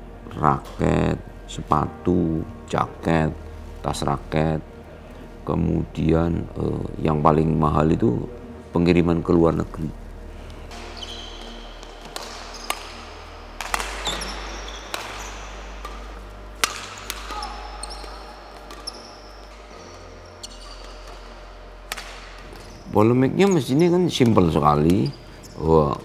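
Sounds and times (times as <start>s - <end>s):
sneaker squeaks on court floor: 10.7s - 21.4s, 22.3s - 26.0s
racket hitting shuttlecock: 10.7s - 22.8s.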